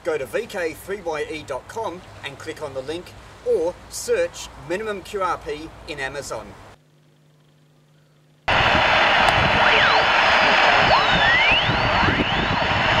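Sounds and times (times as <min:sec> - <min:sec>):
faint hum: 0:01.1 - 0:13.0
radio static hiss: 0:08.5 - 0:13.0
sliding radio whistles: 0:08.5 - 0:13.0.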